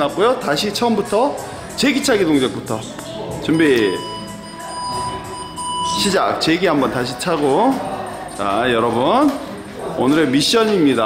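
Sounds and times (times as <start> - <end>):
long high electronic beep: 3.5 - 6.5.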